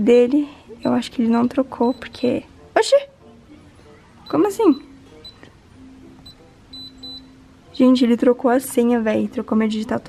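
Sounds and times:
faint background music: 0.0s - 10.0s
keypad beeps: 1.7s - 2.4s, 4.2s - 5.5s, 6.2s - 7.4s
lock double beep: 6.3s - 7.4s.

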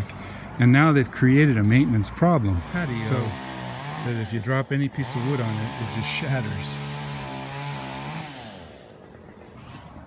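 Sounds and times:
small engine running: 2.4s - 10.0s.

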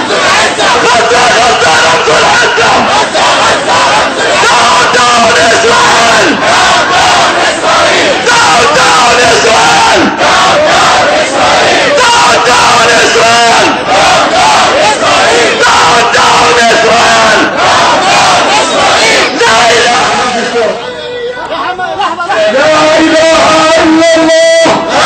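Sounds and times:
crowd chanting slogans: 0.0s - 21.0s, 22.2s - 25.0s.

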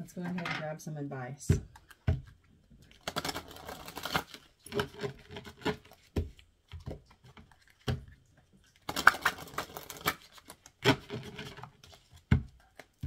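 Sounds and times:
cards being shuffled: 3.0s - 8.1s, 8.8s - 13.0s.

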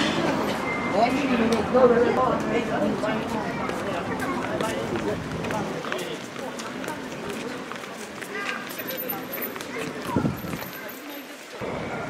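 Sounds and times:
passers-by talking: 0.0s - 12.0s
quick footsteps on pavement: 1.6s - 11.6s.

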